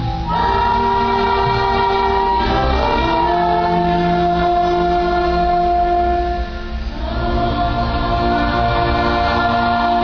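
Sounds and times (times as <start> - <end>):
orchestra playing held chords: 0.0 - 10.0.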